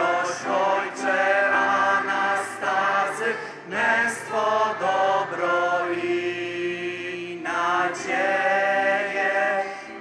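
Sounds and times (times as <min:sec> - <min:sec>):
slow hymn singing: 0:00.0 - 0:10.0.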